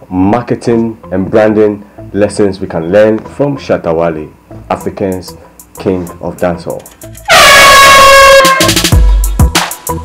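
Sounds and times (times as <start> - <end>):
intro music sting with beat: 6.8 - 10.0
horn blast sound effect: 7.2 - 8.9.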